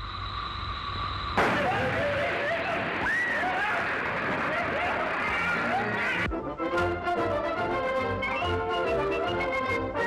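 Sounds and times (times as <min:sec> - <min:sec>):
voices: 0:01.4 - 0:06.3.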